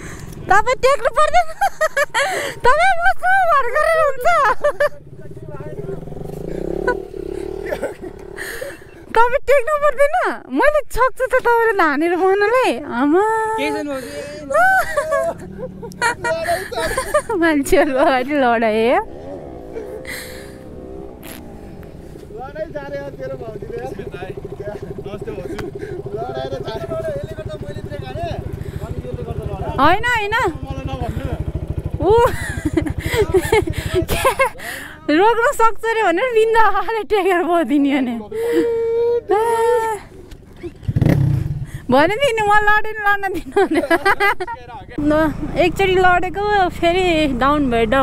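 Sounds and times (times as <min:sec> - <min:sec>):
motorcycle engine running: 0:00.0 - 0:10.0, 0:11.1 - 0:38.3, 0:39.4 - 0:48.0
voices talking: 0:00.0 - 0:40.9, 0:41.8 - 0:48.0.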